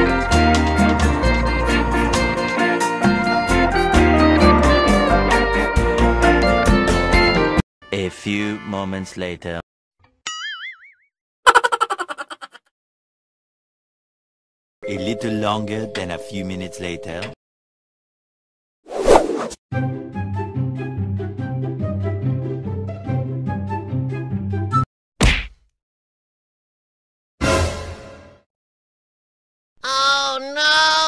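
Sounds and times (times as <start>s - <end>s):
background music: 0.0s - 9.3s, 14.8s - 17.3s, 19.7s - 24.8s
cartoon boing: 10.3s - 11.7s
rapid laughter: 11.5s - 12.7s.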